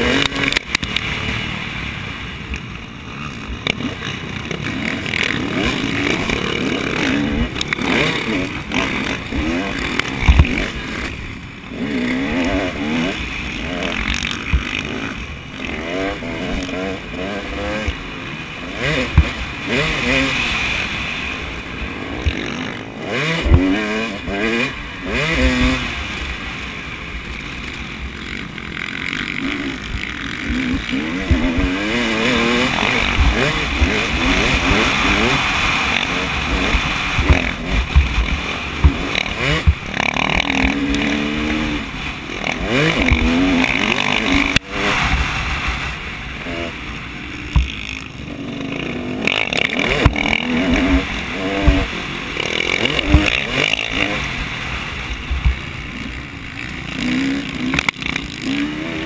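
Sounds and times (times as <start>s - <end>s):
dirt bike engine revving: 0.0s - 59.0s
sharp knocks: 47.5s - 48.0s.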